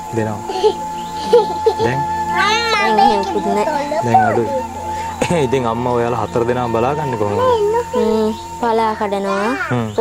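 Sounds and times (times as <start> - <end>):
quiet voices: 0.2 - 8.4, 9.3 - 10.0.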